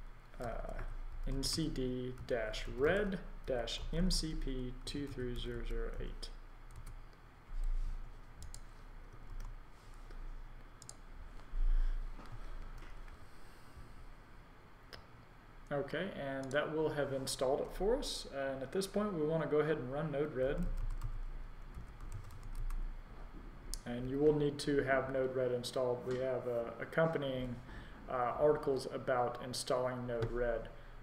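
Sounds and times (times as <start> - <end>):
computer keys clicking: 6.7 - 7.0, 8.3 - 9.6, 10.8 - 11.0, 20.7 - 22.8
keyboard typing: 6.7 - 7.0, 8.2 - 9.6, 10.8 - 11.0, 20.7 - 22.8.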